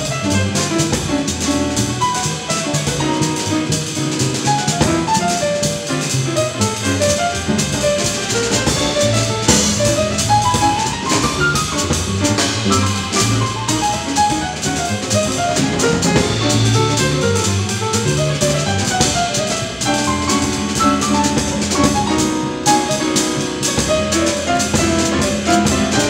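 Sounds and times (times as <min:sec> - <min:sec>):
piano running lines: 0:00.0 - 0:26.0
upright bass: 0:00.0 - 0:26.0.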